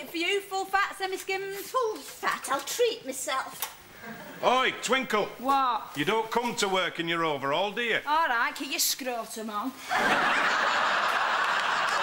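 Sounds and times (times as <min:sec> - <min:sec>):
studio audience laughing: 0:09.8 - 0:12.0.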